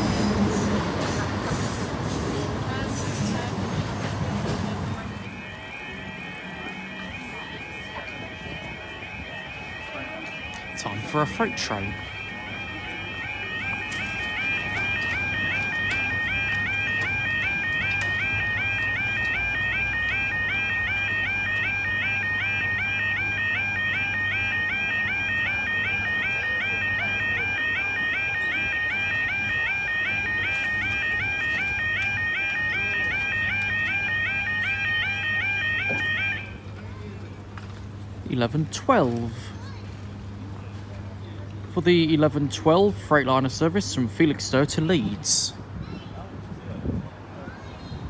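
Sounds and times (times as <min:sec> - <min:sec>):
level crossing warbling alarm: 0:05.0 - 0:36.6.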